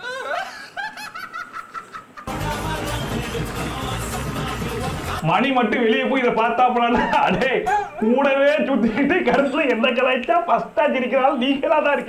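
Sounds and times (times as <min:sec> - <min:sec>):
person laughing: 0:00.0 - 0:02.7, 0:06.9 - 0:08.2.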